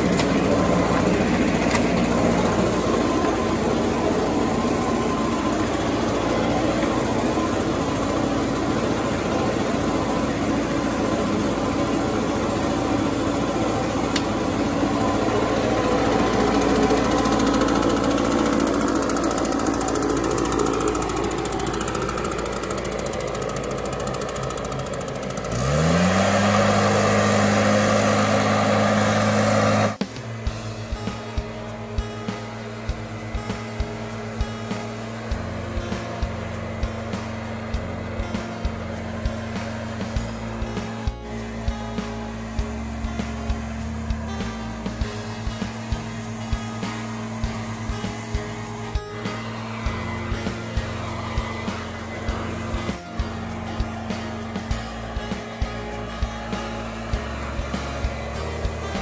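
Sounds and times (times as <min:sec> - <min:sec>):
leaf blower engine revving: 0:00.0 - 0:59.0.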